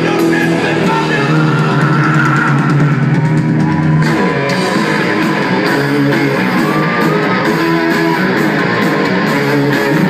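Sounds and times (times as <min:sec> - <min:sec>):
bass guitar: 0:00.0 - 0:10.0
electric guitars: 0:00.0 - 0:10.0.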